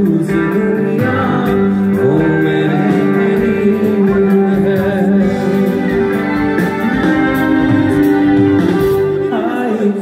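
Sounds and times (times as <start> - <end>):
live band music: 0.0 - 10.0
guitar sliding notes: 1.0 - 10.0.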